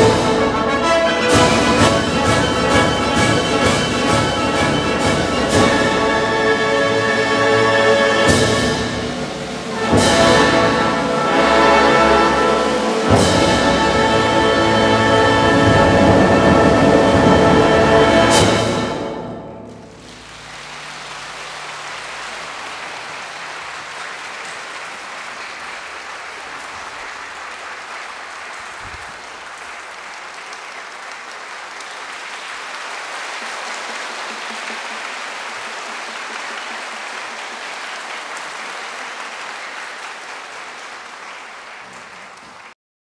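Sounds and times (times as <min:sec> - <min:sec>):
audience applauding: 0:00.0 - 0:16.0, 0:18.2 - 0:42.8.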